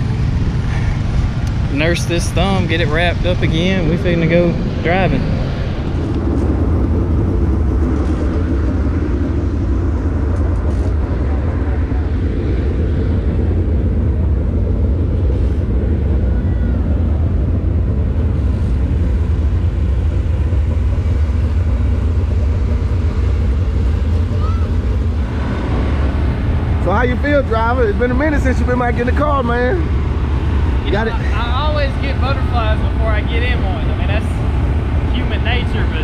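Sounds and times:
race car engines rumbling: 0:00.0 - 0:36.0.

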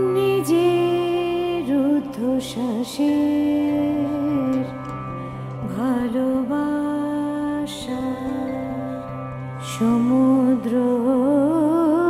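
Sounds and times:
woman singing with vibrato: 0:00.0 - 0:04.9, 0:05.6 - 0:08.9, 0:09.6 - 0:12.0.

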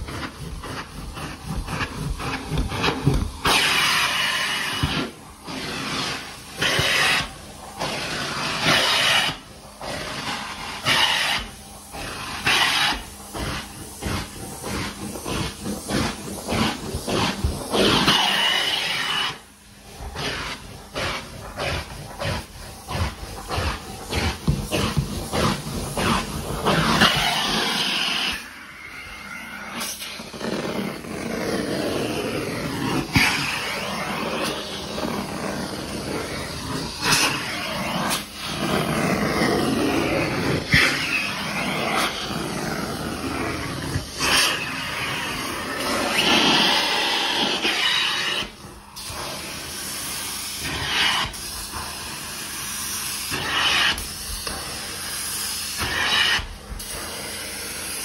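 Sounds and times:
carpet extractor suction hiss: 0:00.0 - 0:58.0.

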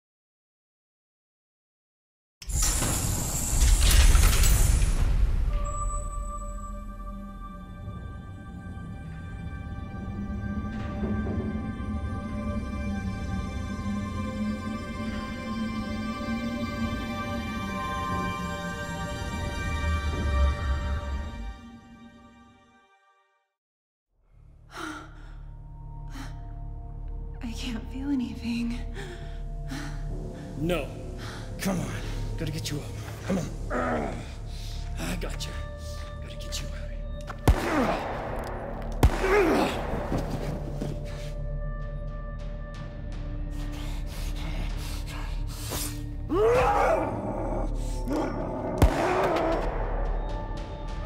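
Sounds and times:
dramatic film score: 0:02.5 - 0:22.7, 0:24.4 - 0:51.0
gunshot bang: 0:37.4 - 0:40.5, 0:48.8 - 0:49.8.

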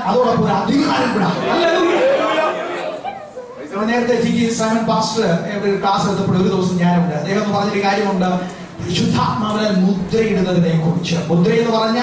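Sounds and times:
man preaching into a microphone: 0:00.0 - 0:02.1, 0:03.7 - 0:12.0.

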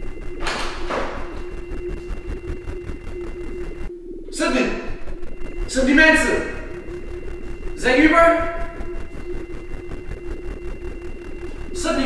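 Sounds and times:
dark droning synthesizer music: 0:00.0 - 0:12.0
rushing swell: 0:04.6 - 0:12.0.

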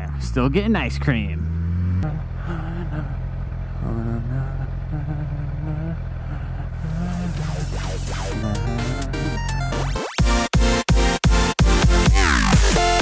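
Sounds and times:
motorcycle engine running: 0:00.0 - 0:10.4.

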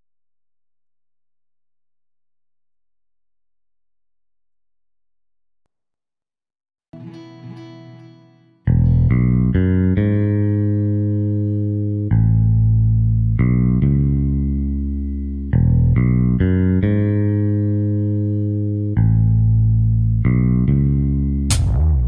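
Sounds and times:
instrumental rock with bass and guitar: 0:08.7 - 0:22.0.

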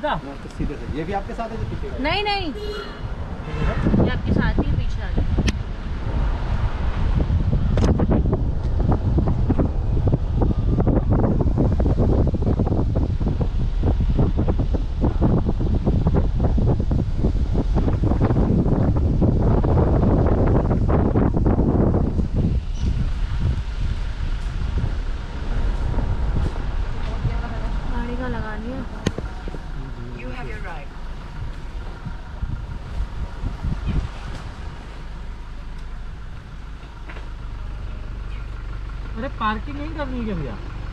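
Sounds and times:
car driving rumble: 0:00.0 - 0:40.9
wind buffeting microphone: 0:00.0 - 0:40.9.

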